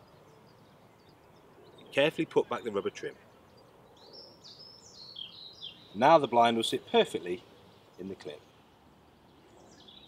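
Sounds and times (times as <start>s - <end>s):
faint background noise: 0.0s - 10.0s
songbird chirping: 0.0s - 10.0s.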